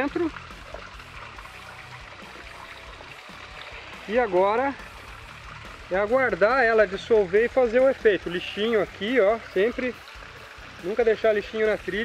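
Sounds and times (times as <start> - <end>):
stream trickling: 0.0 - 12.0.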